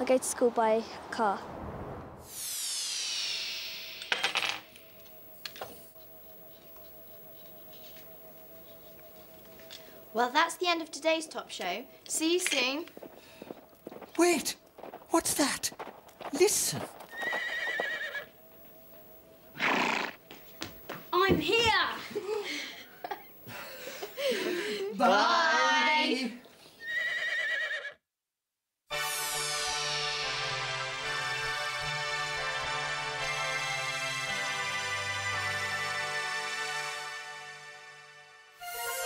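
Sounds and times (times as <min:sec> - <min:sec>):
high whistle-like falling tone: 0:02.2 - 0:04.2
horse snorting blast: 0:19.6 - 0:20.2.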